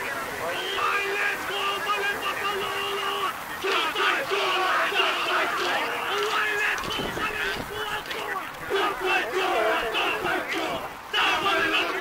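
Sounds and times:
women shouting chant in unison: 8.7s - 12.0s.

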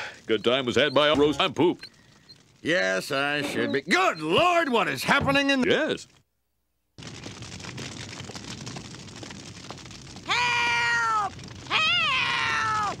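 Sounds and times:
steady crackling haze: 0.0s - 6.3s, 6.9s - 13.0s
high-pitched wailing cries: 10.3s - 13.0s.

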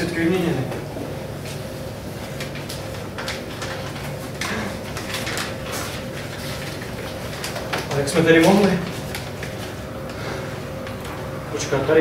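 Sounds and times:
paper rustling and crinkling: 2.2s - 11.1s.

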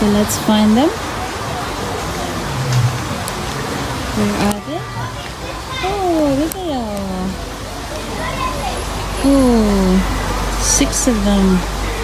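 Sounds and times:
person making wordless sounds: 5.8s - 7.4s.

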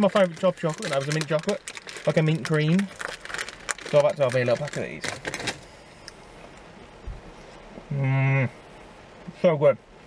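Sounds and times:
sweet wrapper crinkling: 0.0s - 5.7s.

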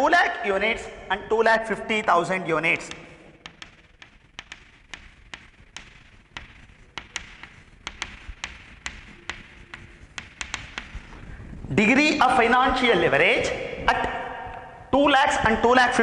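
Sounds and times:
chalk tapping on chalkboard: 2.7s - 11.4s.

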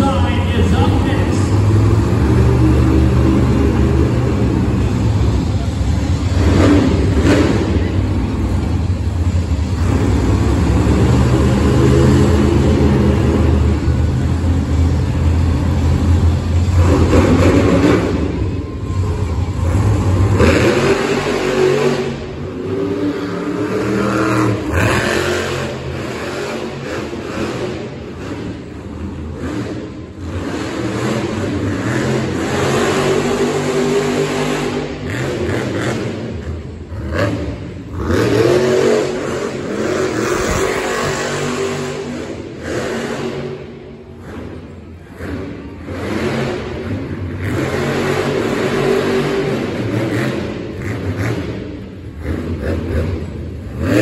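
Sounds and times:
truck engine droning and revving: 0.0s - 54.0s.

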